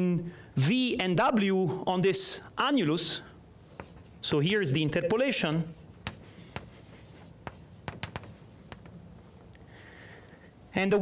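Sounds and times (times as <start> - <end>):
chalk tapping on blackboard: 3.7 - 4.2, 5.6 - 9.0.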